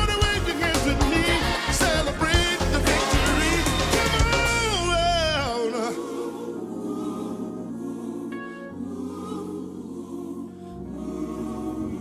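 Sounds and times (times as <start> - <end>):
gospel choir holding a chord: 0.5 - 12.0.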